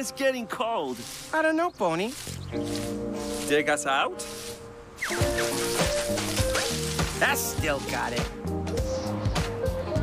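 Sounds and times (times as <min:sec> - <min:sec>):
leaves rustling: 0:00.0 - 0:08.5
playful cartoon music: 0:02.5 - 0:10.0.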